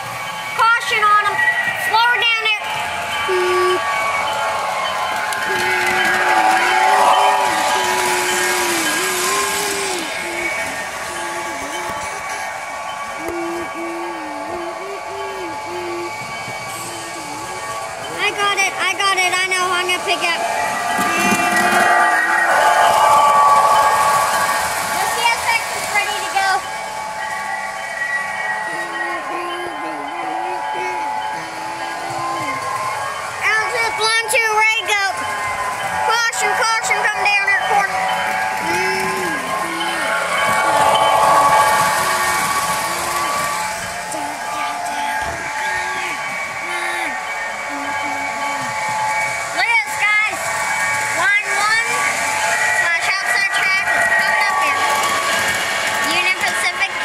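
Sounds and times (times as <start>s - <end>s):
model train motor whine: 0.0s - 57.0s
model train wheel rumble: 0.0s - 57.0s.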